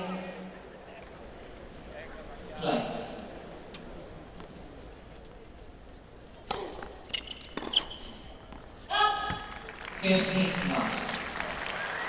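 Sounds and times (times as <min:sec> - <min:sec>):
tennis ball bouncing on hard court: 0:06.4 - 0:09.6.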